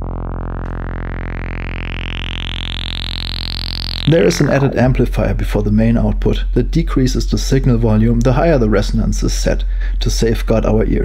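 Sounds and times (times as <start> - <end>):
whistling resonant filter sweep: 0.0 - 5.1
low sawtooth synth drone: 0.0 - 5.6.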